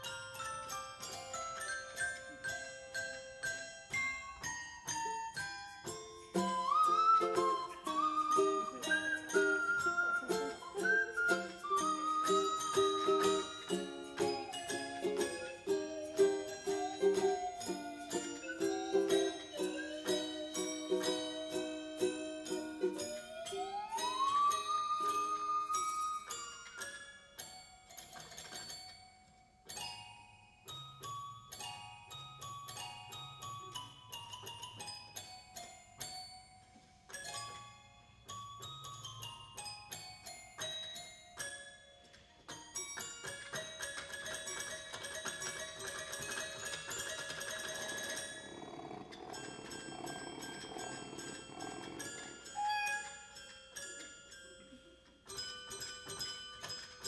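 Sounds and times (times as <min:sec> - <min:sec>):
bell-like struck notes: 0:00.0 - 0:27.3, 0:47.6 - 0:57.0
toy xylophone: 0:00.0 - 0:57.0
toy keyboard cat meows: 0:07.4 - 0:26.2, 0:47.6 - 0:53.4.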